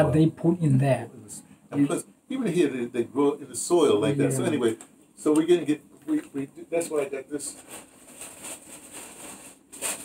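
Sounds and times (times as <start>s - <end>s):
packet rustling: 7.4s - 10.0s
packet crinkle: 7.6s - 10.0s.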